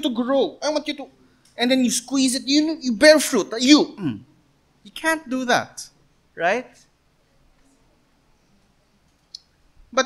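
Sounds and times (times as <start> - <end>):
man speaking: 0.0 - 6.9.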